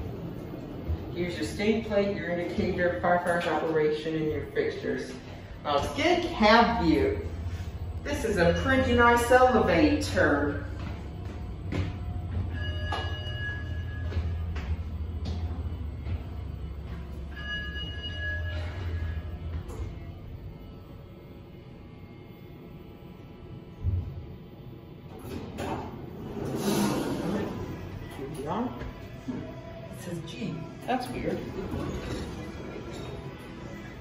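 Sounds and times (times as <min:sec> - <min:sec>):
elevator hum: 0:00.0 - 0:34.0.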